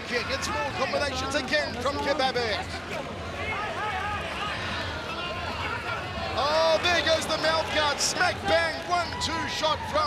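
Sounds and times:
arena background noise: 0.0s - 10.0s.

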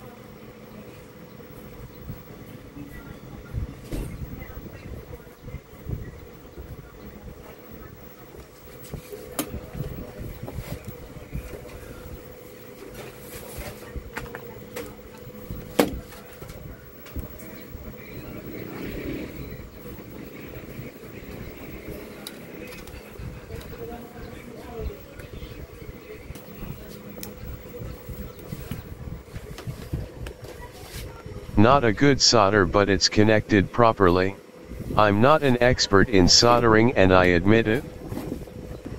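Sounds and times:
low background hum: 30.6s - 37.9s.

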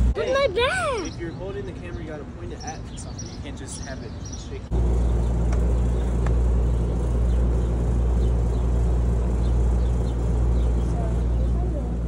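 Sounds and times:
low mechanical hum: 4.7s - 12.0s.

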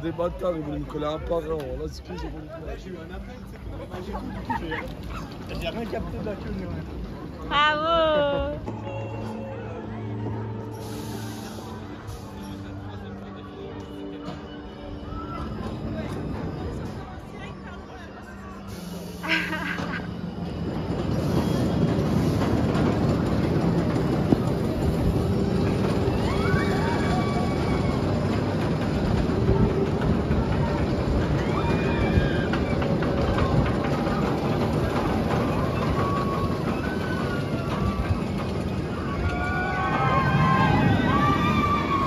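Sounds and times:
roller coaster train roaring: 0.0s - 42.0s
riders screaming: 38.9s - 42.0s.

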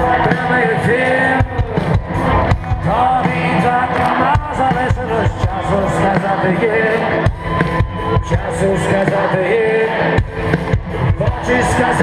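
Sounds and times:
drum beats: 0.0s - 12.0s
live rock band playing: 0.0s - 12.0s
person singing: 0.0s - 12.0s.

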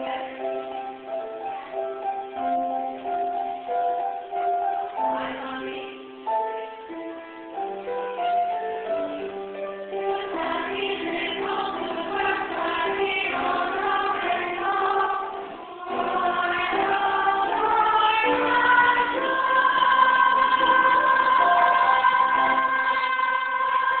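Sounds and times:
mixed choir singing: 0.0s - 2.1s, 5.0s - 6.6s, 9.9s - 24.0s.

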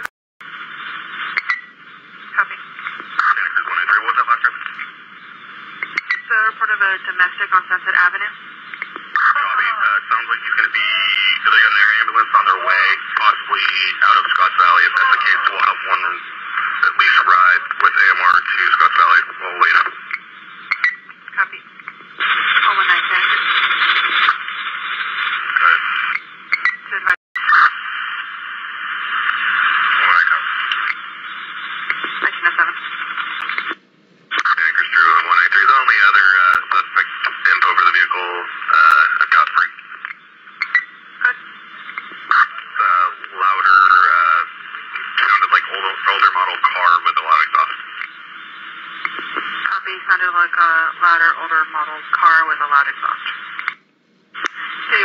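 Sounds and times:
radio static hiss: 0.0s - 55.0s
muffled voices over two-way radio: 2.2s - 53.8s, 54.4s - 55.0s.

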